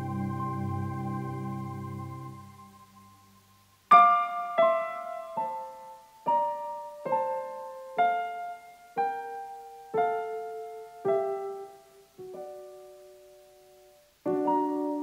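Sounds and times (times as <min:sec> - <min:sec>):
slow solo piano chords: 0:03.9 - 0:15.0.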